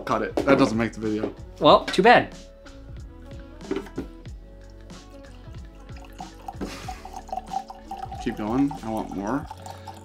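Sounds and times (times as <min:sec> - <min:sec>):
background music with beat: 0:00.0 - 0:10.0
liquor pouring into glass: 0:04.7 - 0:10.0.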